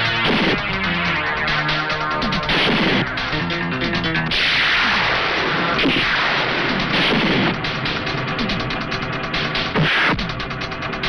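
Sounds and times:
loud rushing swell: 0:00.0 - 0:10.2
dramatic background music: 0:00.0 - 0:11.0
punch and impact effects: 0:00.1 - 0:00.9, 0:02.4 - 0:03.1, 0:04.3 - 0:07.8.

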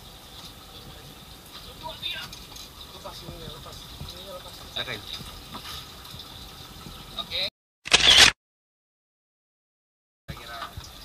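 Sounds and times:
camera shutter sound effect: 0:07.9 - 0:08.4.

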